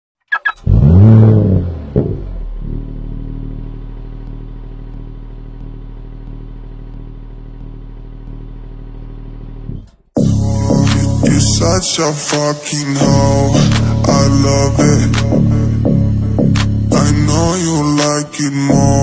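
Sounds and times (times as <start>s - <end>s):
engine revving and idling: 0.5s - 19.0s.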